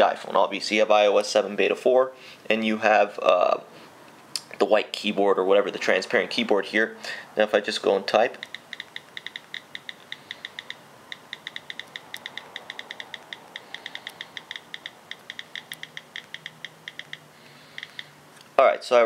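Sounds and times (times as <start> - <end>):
phone keyboard key clicks: 8.4 - 18.1.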